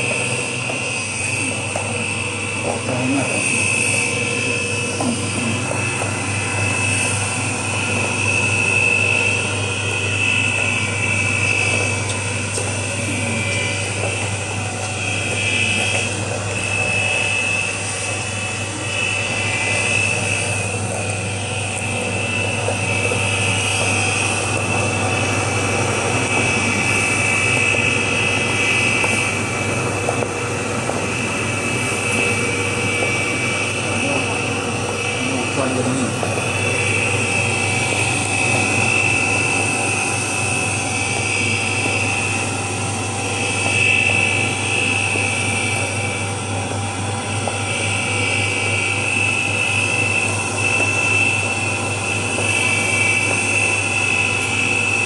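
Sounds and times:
mill motor humming with whine: 0.0 - 55.0.

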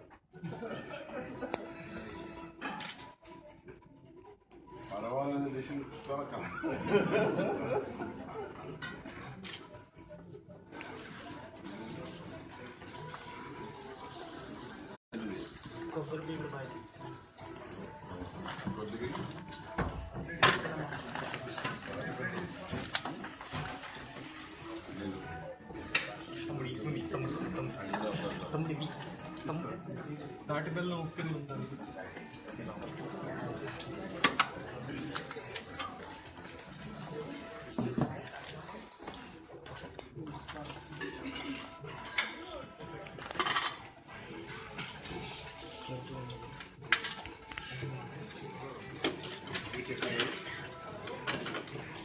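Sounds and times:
murmur of voices: 0.0 - 52.0
plates and utensils clattering: 0.6 - 3.2, 6.6 - 9.8, 15.8 - 30.5, 31.1 - 52.0.

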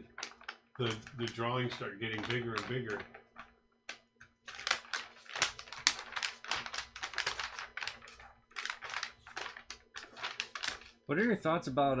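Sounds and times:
paper sheets rustling: 0.0 - 3.6, 4.4 - 11.0.

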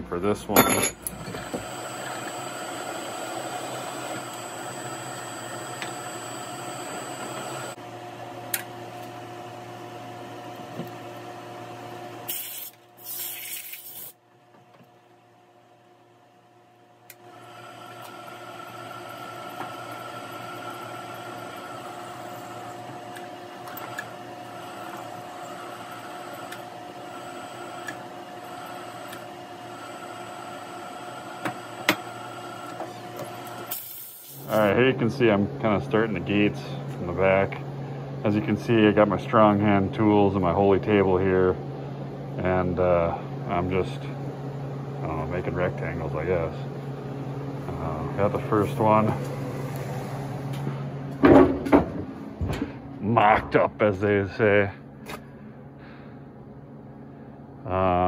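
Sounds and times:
drill press motor humming: 0.2 - 15.5, 16.4 - 40.3.

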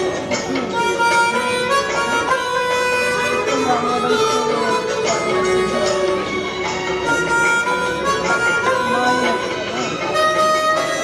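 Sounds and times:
harmonica melody: 0.0 - 11.0
recorded film song music: 0.0 - 11.0.

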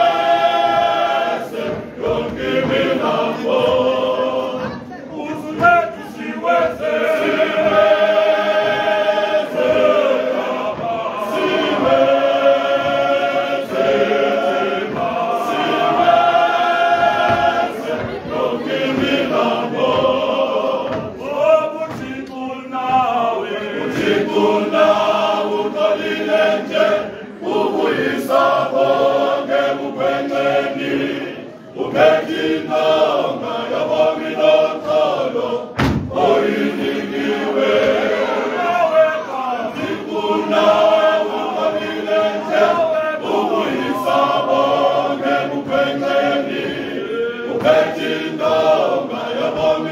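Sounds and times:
men's choir singing: 0.0 - 49.9.

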